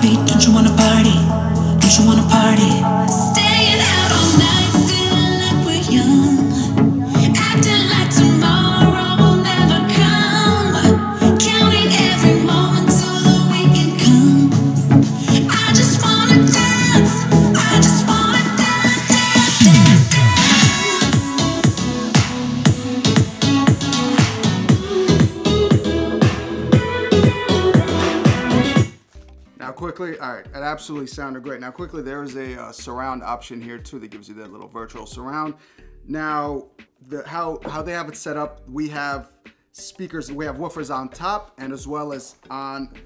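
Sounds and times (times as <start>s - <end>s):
electronic dance-pop music: 0.0s - 29.0s.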